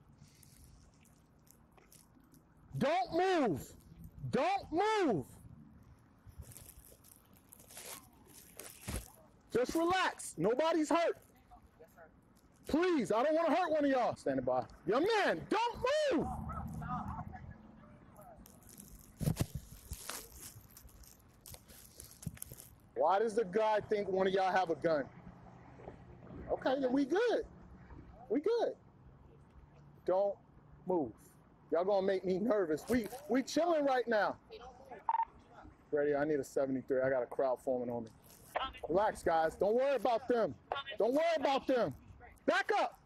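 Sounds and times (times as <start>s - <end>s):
man shouting: 2.8s - 5.3s, 14.9s - 17.2s, 42.5s - 43.0s
microphone rustles and knocks: 18.5s - 22.8s.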